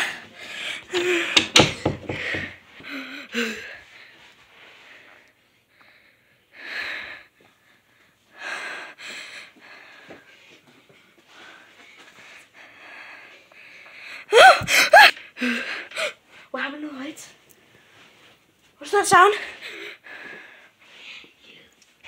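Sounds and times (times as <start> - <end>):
person breathing hard: 0.0 - 16.5, 19.4 - 21.7.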